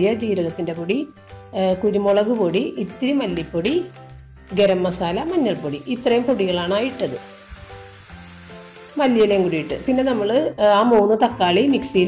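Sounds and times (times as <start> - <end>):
masala sizzling in a pan: 0.0 - 10.6
soft background music: 0.0 - 12.0.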